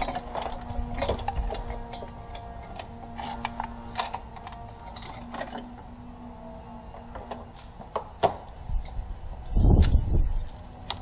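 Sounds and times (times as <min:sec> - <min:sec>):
metal tools clinking: 0:00.0 - 0:05.8.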